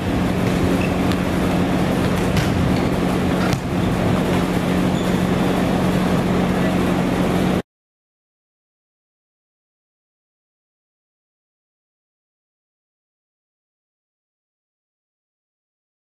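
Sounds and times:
loud steady hum: 0:00.0 - 0:07.6
volleyballs being hit: 0:00.1 - 0:04.9.

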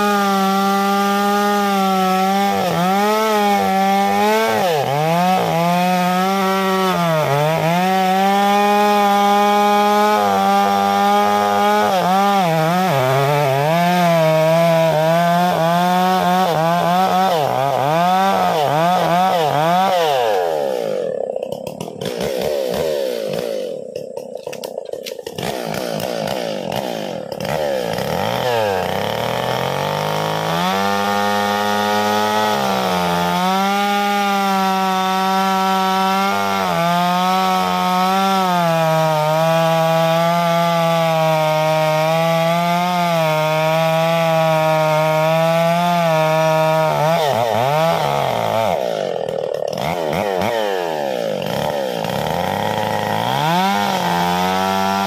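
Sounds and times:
chainsaw cutting tree trunk: 0:00.0 - 0:55.0
log round dropping: 0:23.9 - 0:26.4.

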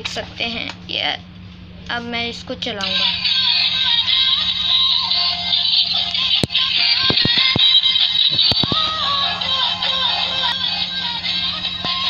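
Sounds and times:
tinny electronic toy tune: 0:08.7 - 0:11.2.

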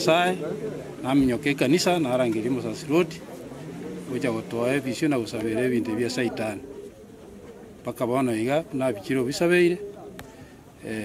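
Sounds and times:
man speaking: 0:00.0 - 0:03.2, 0:04.0 - 0:06.7.

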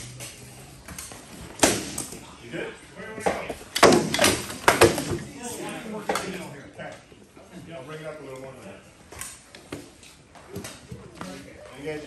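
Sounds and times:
rattan swords striking shields: 0:01.5 - 0:02.2, 0:03.2 - 0:05.3.

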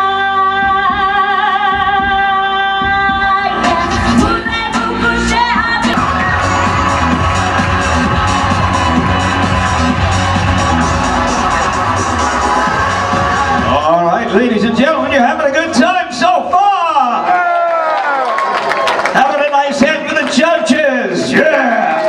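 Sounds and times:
karaoke backing track with beat: 0:00.0 - 0:16.0
audience whoops: 0:06.0 - 0:14.3, 0:17.1 - 0:19.2.

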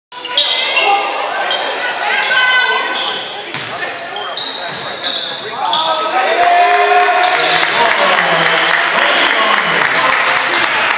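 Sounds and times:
people's voices in hall: 0:00.1 - 0:10.9
sneaker squeaks on court: 0:01.5 - 0:06.0.

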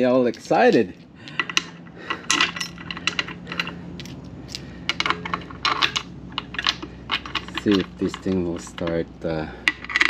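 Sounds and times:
metal bolts clinking: 0:00.2 - 0:10.0.

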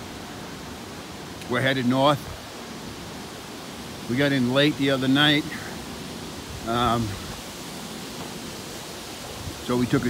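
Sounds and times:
river water rushing: 0:00.0 - 0:10.0
man's voice: 0:06.6 - 0:07.2.

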